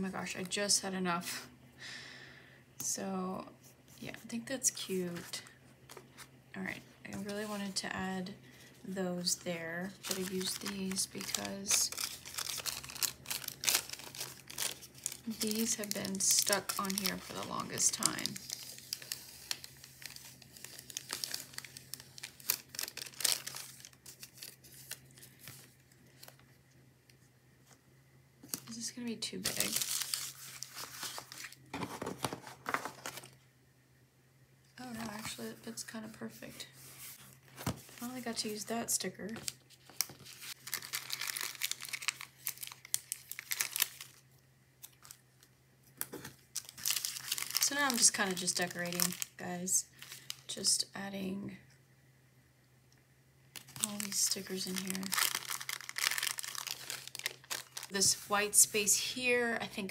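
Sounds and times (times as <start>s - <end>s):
plastic packaging crinkling: 9.2s - 26.6s, 29.4s - 33.4s, 39.3s - 50.6s, 53.6s - 59.0s.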